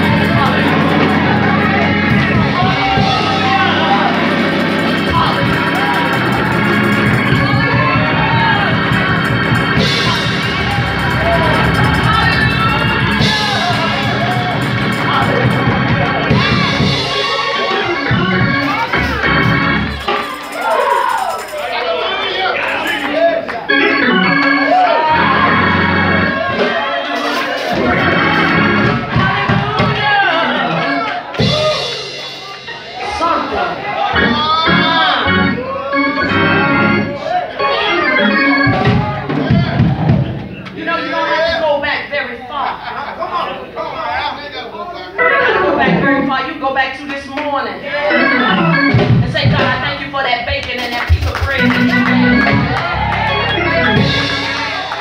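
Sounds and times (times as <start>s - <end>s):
organ playing held chords: 0.0s - 41.5s, 45.1s - 46.7s, 47.8s - 55.0s.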